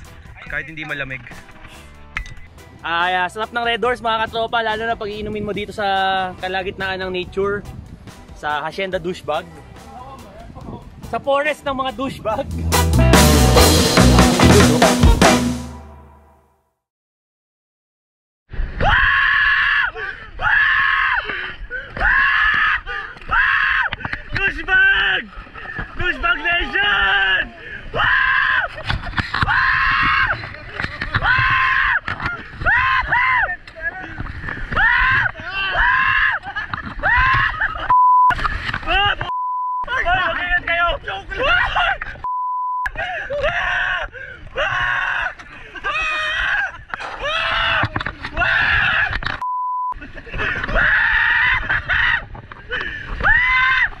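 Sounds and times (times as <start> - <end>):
people screaming: 18.8 - 25.3, 26.2 - 37.9, 43.0 - 49.3, 50.4 - 54.0
censor bleep: 37.9 - 38.4, 39.3 - 39.9, 42.3 - 42.9, 49.4 - 50.0.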